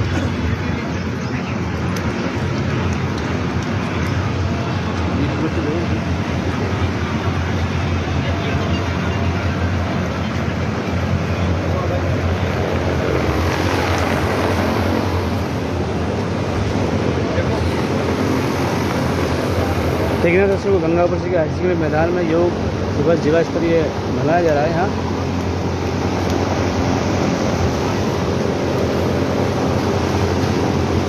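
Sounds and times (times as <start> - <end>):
air cooler fan noise: 0.0 - 31.0.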